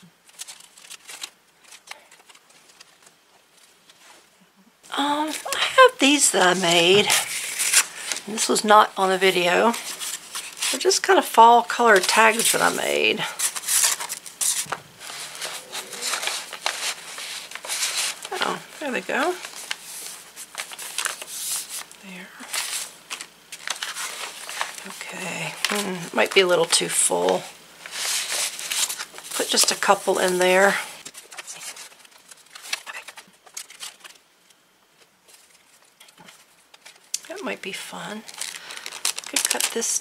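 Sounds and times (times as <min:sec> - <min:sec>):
paper tags rustling and scraping: 0:00.0 - 0:04.2, 0:05.2 - 0:40.0.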